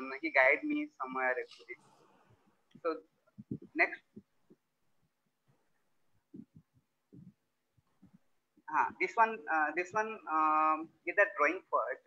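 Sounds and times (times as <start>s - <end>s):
faint low thumps: 2.3s - 5.6s, 6.2s - 9.0s.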